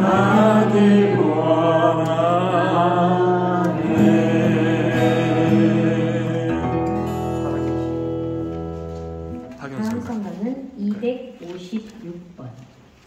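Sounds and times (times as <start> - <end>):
person singing a hymn: 0.0 - 7.2
instrumental accompaniment: 3.6 - 9.7.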